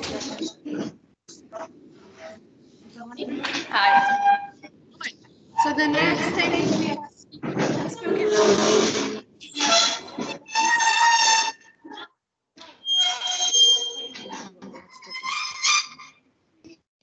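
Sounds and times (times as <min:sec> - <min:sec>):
indistinct voices: 0:00.0 - 0:11.1, 0:11.8 - 0:15.6.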